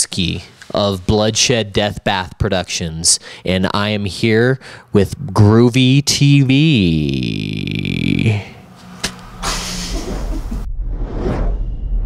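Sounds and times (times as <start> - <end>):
deep rumble: 8.6 - 12.0
whooshes: 8.6 - 12.0.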